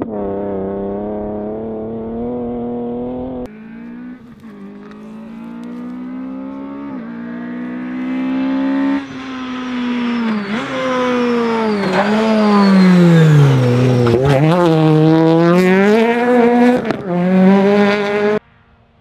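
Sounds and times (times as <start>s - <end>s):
rally car engine revving: 0.0s - 18.4s
high whine: 3.5s - 18.9s.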